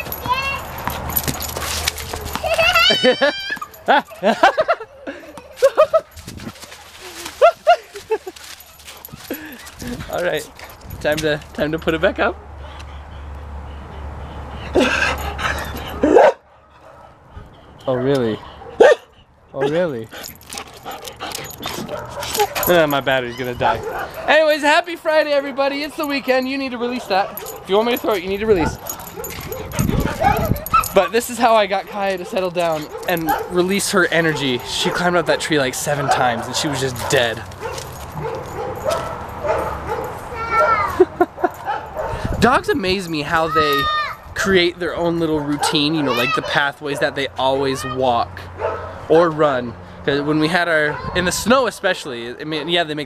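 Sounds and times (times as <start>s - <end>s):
dog whining: 0.0s - 4.2s, 13.7s - 16.4s, 17.8s - 24.3s, 27.0s - 31.2s, 37.6s - 42.1s
scratchy rustling: 6.2s - 11.0s
dog barking: 15.9s - 17.2s, 17.9s - 19.9s, 21.7s - 24.4s, 26.9s - 31.2s, 31.8s - 35.2s, 35.9s - 40.9s, 41.5s - 42.3s, 48.6s - 49.0s.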